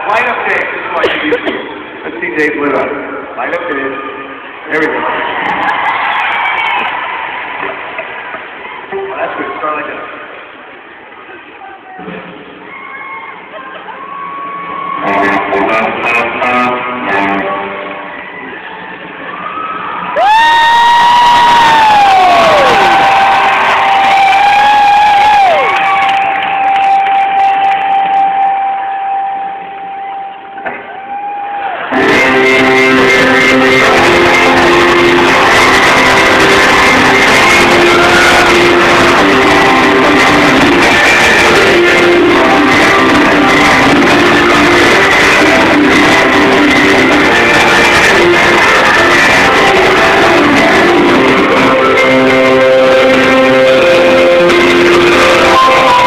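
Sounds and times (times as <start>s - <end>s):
electric guitar lead line: 15.0s - 18.2s, 20.5s - 31.0s, 31.9s - 56.0s
live rock band playing: 31.9s - 56.0s.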